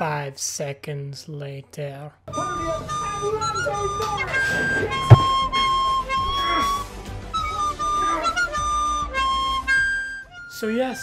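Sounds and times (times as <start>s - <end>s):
music with held melody notes: 2.3s - 10.8s.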